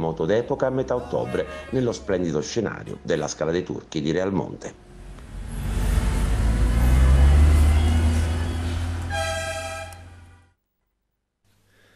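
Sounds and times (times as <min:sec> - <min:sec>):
road noise: 0:04.6 - 0:10.6
car engine rumble: 0:04.8 - 0:10.5
car horn toot: 0:07.7 - 0:10.5.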